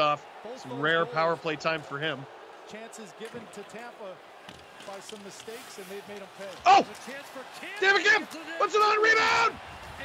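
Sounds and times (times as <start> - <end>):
arena background noise: 0.0 - 10.0
sports commentary: 0.0 - 10.0.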